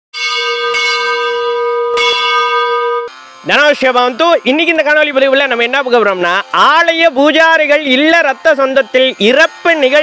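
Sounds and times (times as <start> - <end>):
bell ringing: 0.2 - 6.9.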